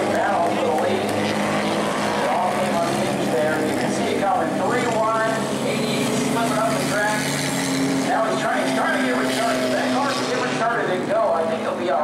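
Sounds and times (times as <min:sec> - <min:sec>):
distant voice over loudspeakers: 0:00.0 - 0:07.4, 0:08.0 - 0:12.0
vehicle engines idling: 0:00.0 - 0:12.0.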